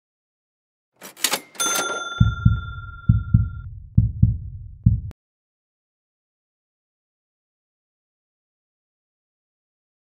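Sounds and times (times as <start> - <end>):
bright chime ringing: 1.4 - 3.6
heartbeat thumps: 2.2 - 5.2.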